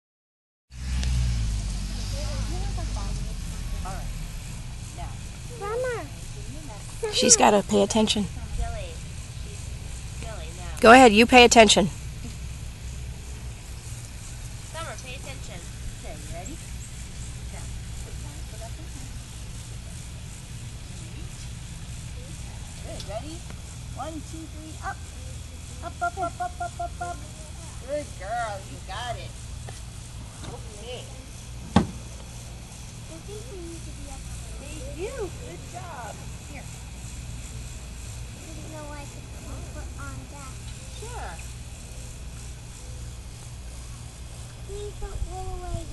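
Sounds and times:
steady low rumble: 0.8 - 45.9
quiet talking: 1.7 - 45.9
wind buffeting microphone: 44.7 - 45.9.

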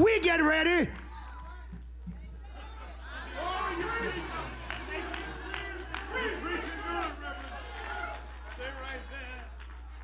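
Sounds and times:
clapping: 4.5 - 10.0.

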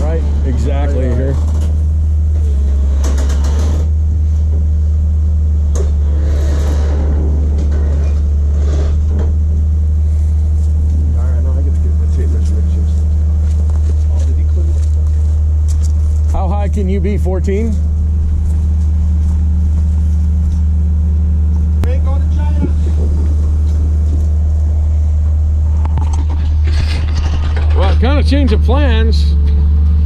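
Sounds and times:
diesel engine idling: 0.0 - 30.0.

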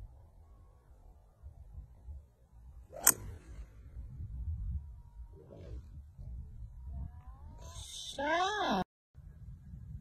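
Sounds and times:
golf driver striking ball: 2.9 - 3.4.

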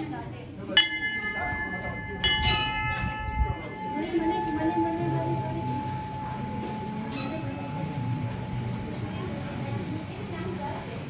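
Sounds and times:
metal temple bells ringing: 0.7 - 11.0.

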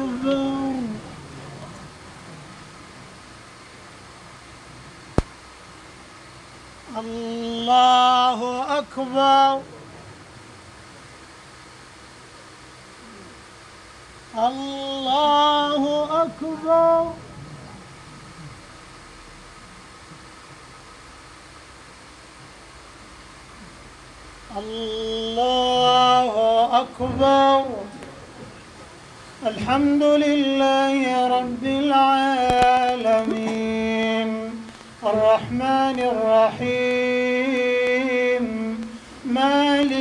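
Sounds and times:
room noise hiss: 0.0 - 40.0.

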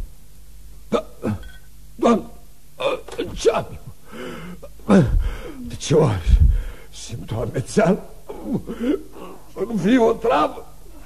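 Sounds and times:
man hiccuping: 0.9 - 4.0, 8.3 - 9.2.

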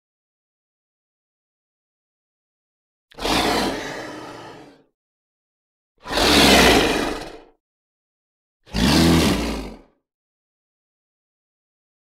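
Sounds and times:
big cat roaring: 3.1 - 4.9, 6.0 - 7.5, 8.7 - 10.0.

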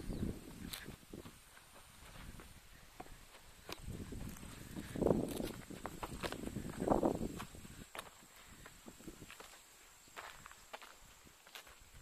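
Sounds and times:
footsteps on wooden steps: 0.5 - 11.9.

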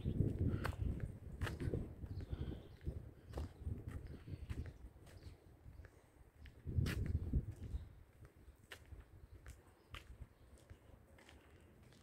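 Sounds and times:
footsteps on concrete: 0.1 - 12.0.

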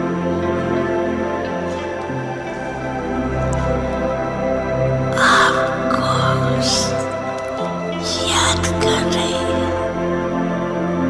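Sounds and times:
slow meditation music: 0.0 - 11.0.

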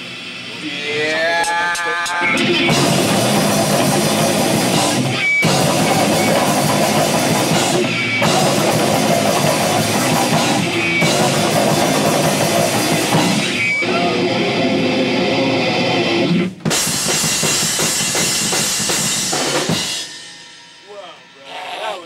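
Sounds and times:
hardcore punk band playing: 0.0 - 22.0.

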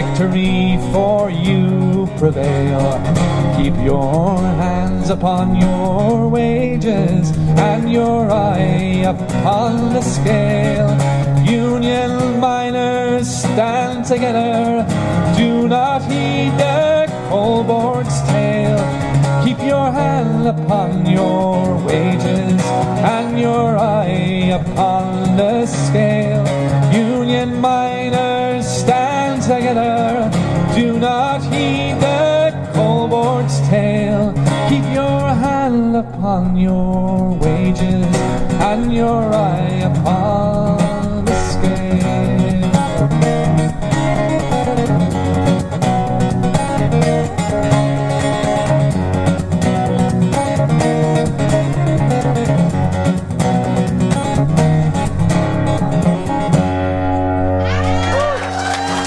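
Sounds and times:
acoustic guitar picking and strumming: 0.0 - 59.0.

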